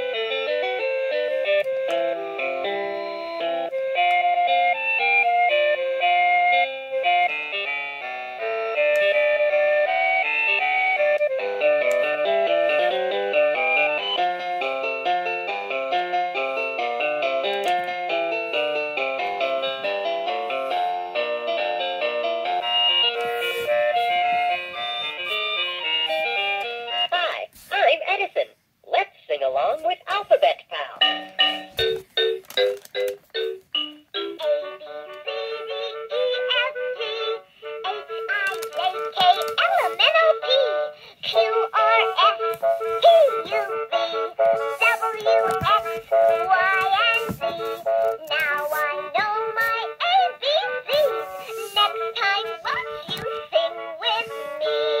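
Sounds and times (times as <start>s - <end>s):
sung voice through small speaker: 27.1s - 31.1s
toy playing electronic beeping tune: 31.0s - 34.6s.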